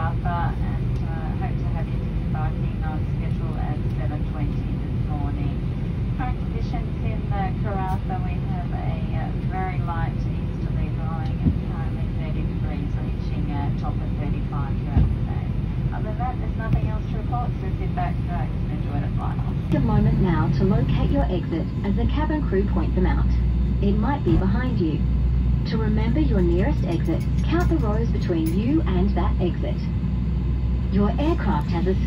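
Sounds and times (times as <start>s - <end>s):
low aircraft cabin drone: 0.0s - 32.0s
passengers talking: 0.0s - 32.0s.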